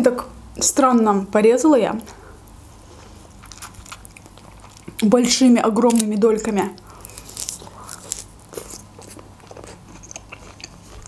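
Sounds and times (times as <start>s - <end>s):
person biting and chewing fruit: 3.0s - 5.0s, 6.8s - 11.0s.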